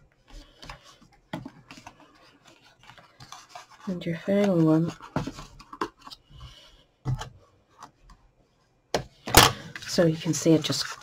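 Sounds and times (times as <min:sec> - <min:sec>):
rubbing and rustling of card: 0:00.2 - 0:06.7, 0:09.7 - 0:11.0.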